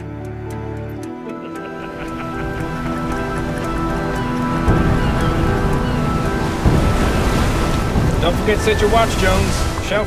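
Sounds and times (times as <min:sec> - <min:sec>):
film score sustained notes: 0:00.0 - 0:10.0
heavy waves: 0:01.0 - 0:10.0
wind rumble: 0:01.9 - 0:10.0.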